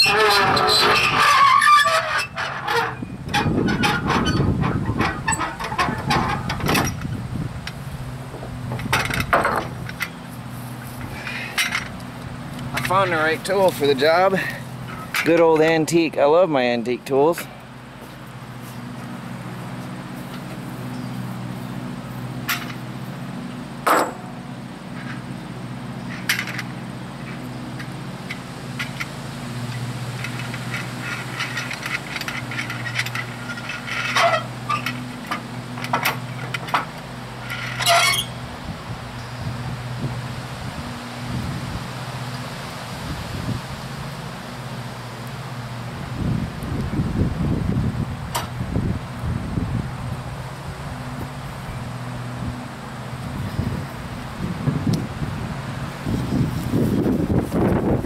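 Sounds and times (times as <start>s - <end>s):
wind on microphone: 2.9s - 9.9s, 46.0s - 50.2s, 53.3s - 58.0s
hand tools clinking on metal: 12.6s - 16.0s.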